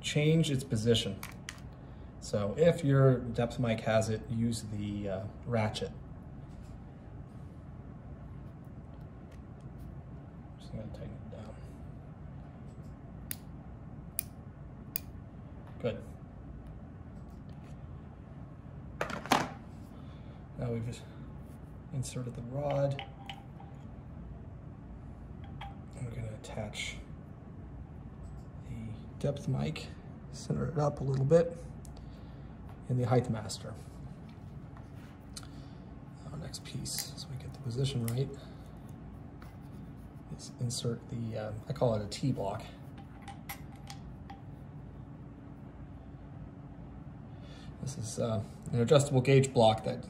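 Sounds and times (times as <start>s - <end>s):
faint steady hum: 0.0s - 50.0s.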